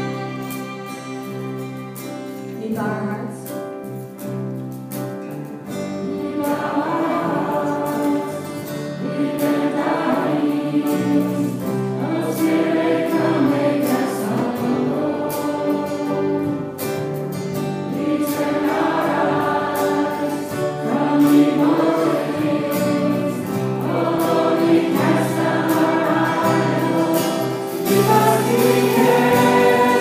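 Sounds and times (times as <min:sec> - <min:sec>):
violin: 0:00.0 - 0:03.5, 0:17.8 - 0:30.0
instrumental accompaniment: 0:00.0 - 0:30.0
congregation singing: 0:06.0 - 0:30.0.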